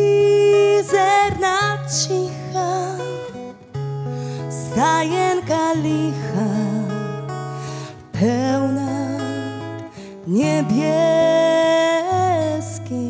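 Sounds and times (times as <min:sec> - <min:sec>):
woman singing: 0:00.0 - 0:03.6, 0:04.4 - 0:13.0
acoustic guitar: 0:00.0 - 0:13.0.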